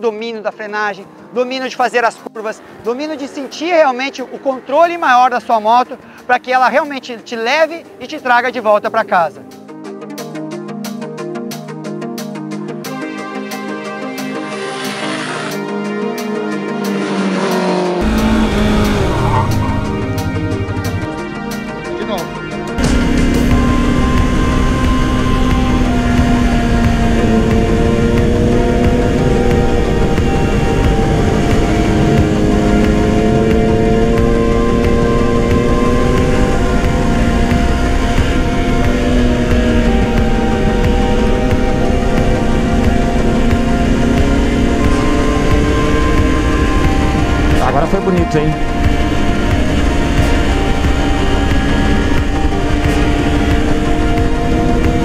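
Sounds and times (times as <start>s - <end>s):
background music with held notes: 0.0s - 55.0s
motorcycle engine running: 14.4s - 21.7s, 22.8s - 55.0s
wind rushing: 16.9s - 35.0s.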